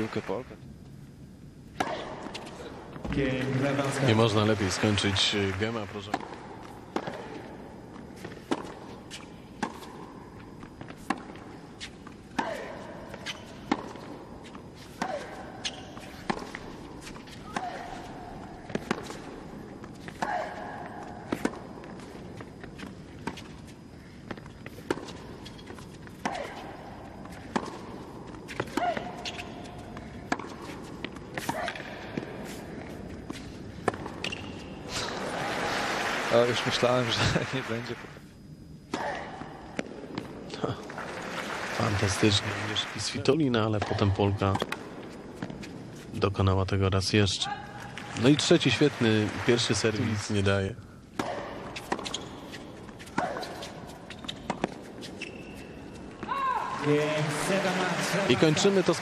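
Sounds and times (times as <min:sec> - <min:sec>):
tennis ball hit with racquets: 0:14.9 - 0:18.0, 0:51.1 - 0:55.1
shoe squeals on court: 0:15.6 - 0:16.2, 0:28.7 - 0:29.7, 0:34.2 - 0:34.8, 0:51.8 - 0:55.8.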